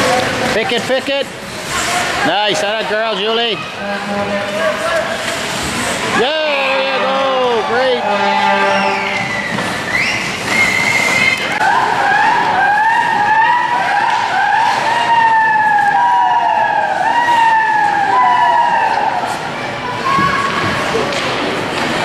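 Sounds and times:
spectators cheering: 0:06.0 - 0:20.2.

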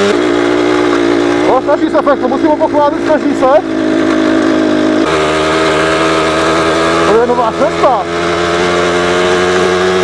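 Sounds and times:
moped engine running: 0:00.0 - 0:10.0.

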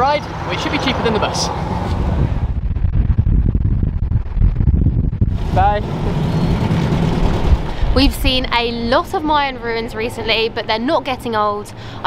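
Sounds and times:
wind buffeting microphone: 0:00.6 - 0:11.2.

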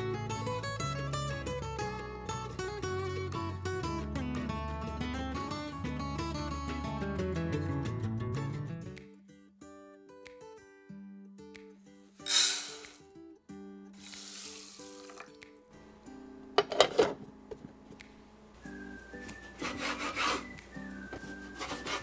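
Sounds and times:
rice poured into metal tin: 0:12.2 - 0:13.1, 0:14.0 - 0:15.4
metal lid clinking: 0:16.6 - 0:17.2.

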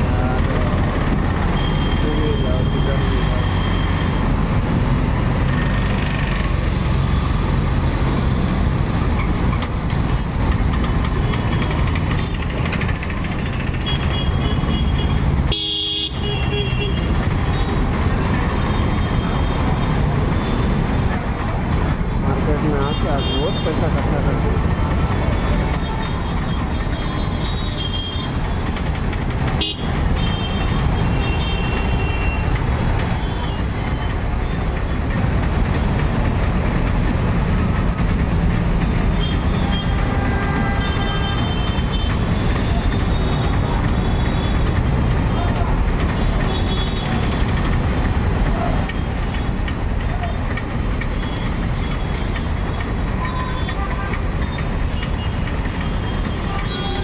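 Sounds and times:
traffic engines rumbling: 0:00.0 - 0:57.0
vehicle horns tooting: 0:01.5 - 0:04.1, 0:13.8 - 0:17.8, 0:22.7 - 0:24.0, 0:25.4 - 0:28.4, 0:29.4 - 0:34.6, 0:39.2 - 0:45.6, 0:46.2 - 0:47.5, 0:51.2 - 0:57.0.

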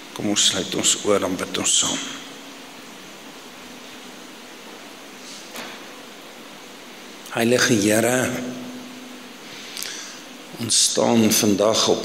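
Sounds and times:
microphone room hiss: 0:00.0 - 0:12.0
soft breath hiss: 0:00.0 - 0:12.0.

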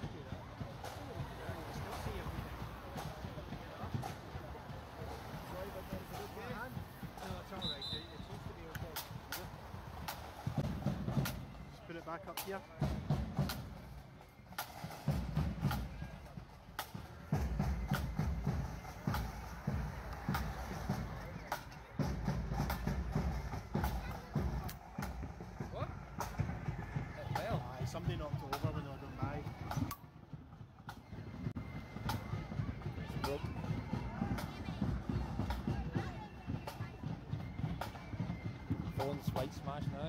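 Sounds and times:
crowd voices: 0:00.0 - 0:40.0.

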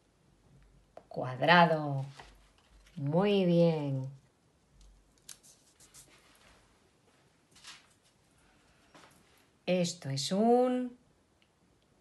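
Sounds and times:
faint clicks of handled figures: 0:04.0 - 0:06.1.

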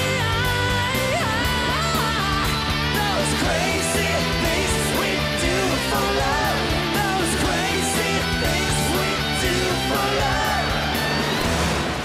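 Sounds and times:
bass: 0:00.0 - 0:12.0
distorted electric guitars: 0:00.0 - 0:12.0
drums: 0:00.0 - 0:12.0
live rock band playing: 0:00.0 - 0:12.0.

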